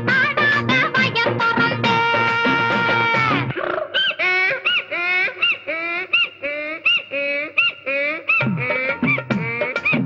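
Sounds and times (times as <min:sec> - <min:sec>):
person making warbling calls: 0:02.3 - 0:10.0.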